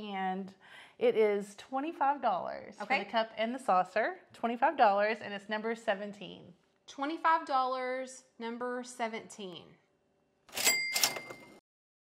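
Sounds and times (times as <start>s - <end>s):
cash register ka-ching: 10.5s - 11.6s.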